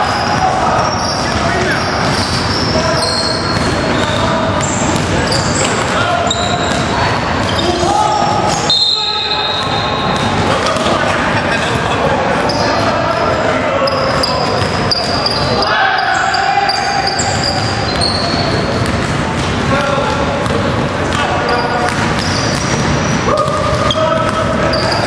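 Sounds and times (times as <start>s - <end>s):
players' voices echoing: 0.0s - 25.0s
sneakers squeaking: 0.0s - 25.0s
basketball bouncing: 0.2s - 7.6s, 9.5s - 12.0s, 17.1s - 25.0s.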